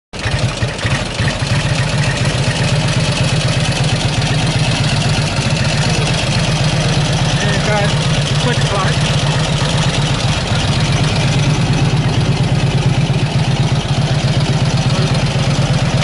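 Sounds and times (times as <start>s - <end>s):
motorcycle engine idling: 0.2s - 16.0s.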